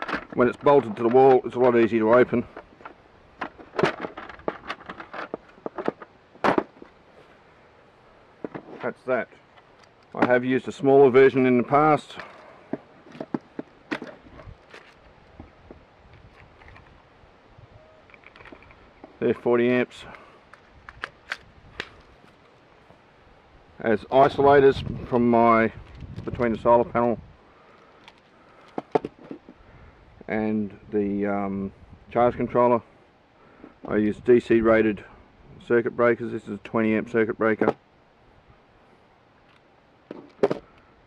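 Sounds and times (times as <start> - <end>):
plastic housing clicking and clacking: 18.0 - 18.8.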